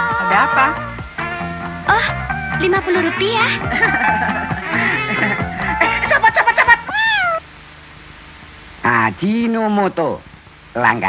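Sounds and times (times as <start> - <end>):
faint hiss: 0.0 - 11.0
cat meowing: 6.8 - 7.4.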